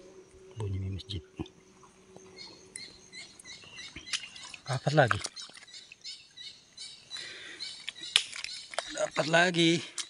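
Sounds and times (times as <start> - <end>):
water splashing: 3.8 - 6.1.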